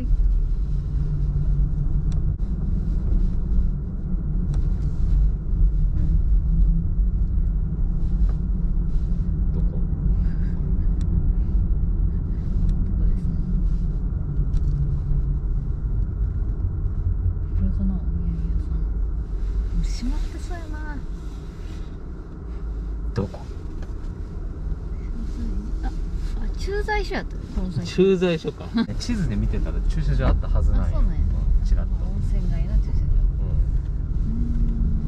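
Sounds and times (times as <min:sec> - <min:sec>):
car engine and tyre rumble: 0:00.0 - 0:35.0.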